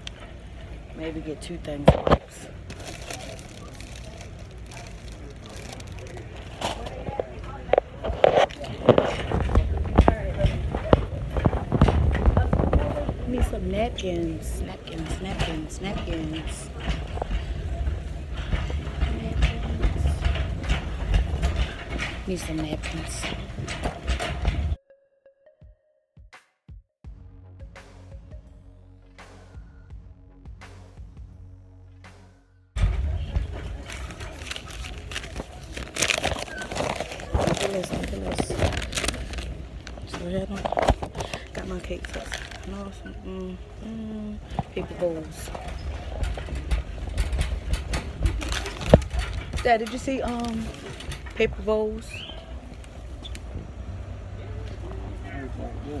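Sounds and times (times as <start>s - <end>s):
knocks and rustles: 1.4s - 24.8s, 32.8s - 43.2s, 43.8s - 53.7s
phone handling rumble: 1.4s - 24.8s, 32.8s - 53.0s.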